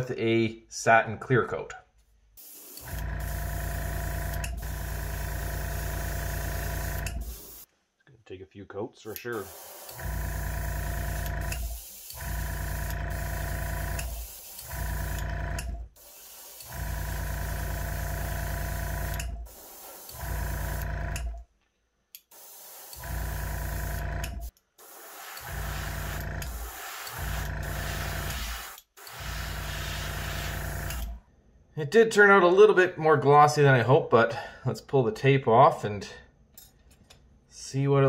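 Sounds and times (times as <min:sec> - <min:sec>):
air compressor motor humming: 0:02.4 - 0:07.7, 0:09.3 - 0:21.4, 0:22.4 - 0:31.2
airbrush air hissing: 0:02.4 - 0:07.7, 0:09.1 - 0:10.5, 0:11.1 - 0:15.2, 0:15.9 - 0:17.0, 0:19.0 - 0:20.8, 0:22.3 - 0:31.2.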